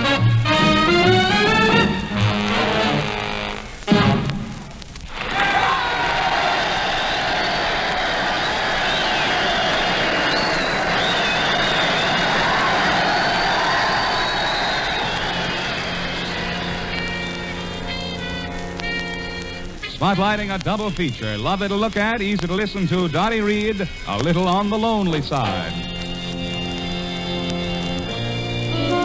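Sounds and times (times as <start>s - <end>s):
swing band playing: 0.0s - 4.7s, 15.1s - 29.0s
audience applause and cheering: 0.0s - 19.8s, 25.3s - 29.0s.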